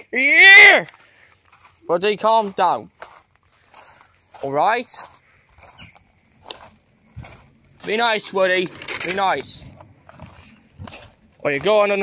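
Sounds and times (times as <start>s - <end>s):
person speaking: 0.0s - 5.3s, 6.5s - 12.0s.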